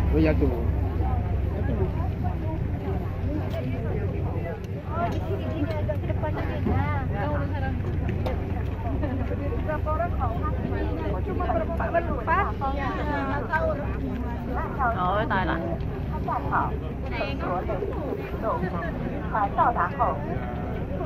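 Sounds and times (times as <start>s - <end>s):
crowd chatter: 0.0s - 21.0s
ferry engine drone: 0.0s - 21.0s.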